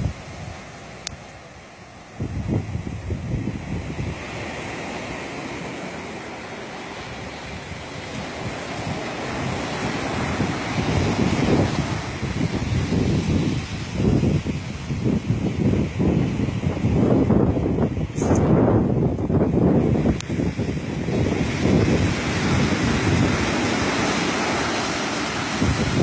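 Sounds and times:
surf washing on beach: 0.0s - 26.0s
wind buffeting microphone: 0.0s - 26.0s.

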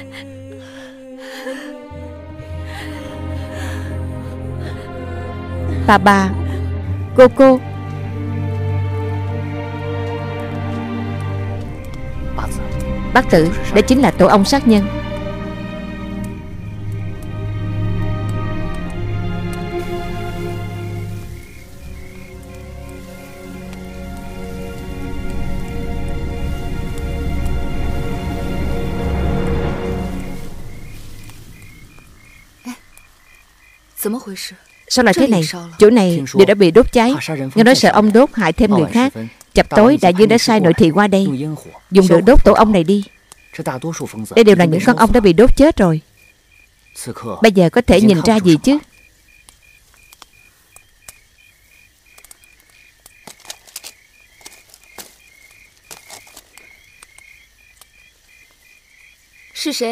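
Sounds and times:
background music: 0.0s - 32.0s, 34.9s - 43.1s, 43.8s - 46.0s, 47.4s - 48.9s
high chirps at night: 1.4s - 59.9s
man speaking: 37.1s - 37.8s, 38.7s - 39.4s, 40.2s - 41.9s, 43.6s - 45.0s, 47.0s - 48.6s
light clicks and rustles: 52.1s - 58.0s.

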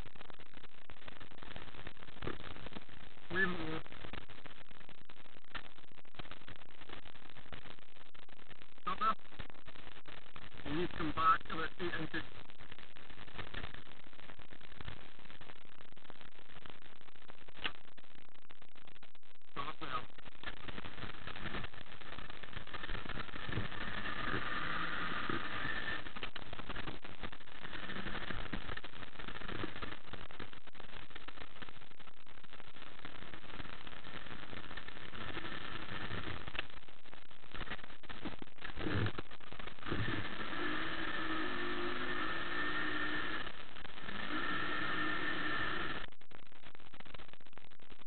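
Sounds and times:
constant rushing noise: 0.0s - 46.2s.

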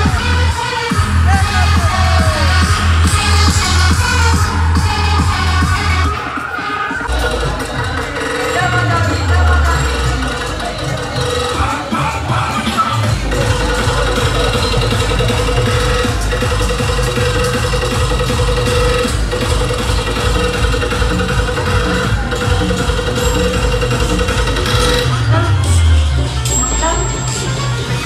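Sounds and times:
heavy bass: 0.0s - 28.0s.

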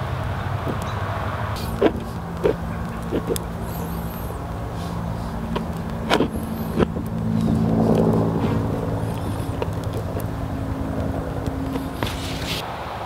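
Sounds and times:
vehicle engine running: 0.0s - 12.6s
sharp clicks: 9.0s - 12.2s.

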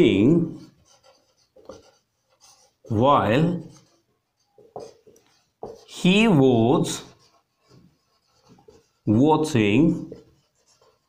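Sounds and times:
marker pen writing on whiteboard: 0.0s - 11.0s.

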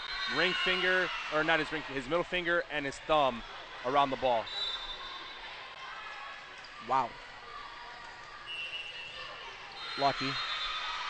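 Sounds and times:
volleyball rally in a gymnasium: 0.0s - 11.0s.

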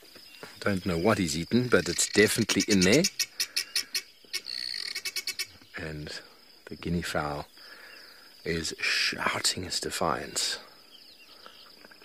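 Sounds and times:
guineafowl alarm calls: 0.4s - 6.0s.

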